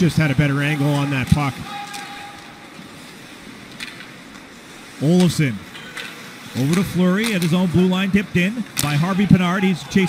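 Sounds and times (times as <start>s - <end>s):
skates on ice: 0.0s - 10.0s.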